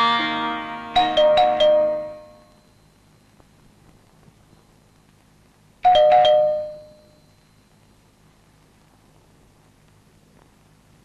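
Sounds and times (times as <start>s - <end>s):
doorbell chime: 0.9s - 2.8s, 5.8s - 7.2s.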